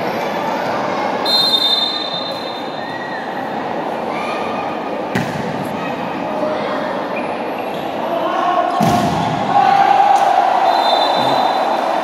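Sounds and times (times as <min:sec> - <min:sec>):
crowd of spectators: 0:00.0 - 0:12.0
referee's whistle blast: 0:01.2 - 0:02.7, 0:10.6 - 0:11.6.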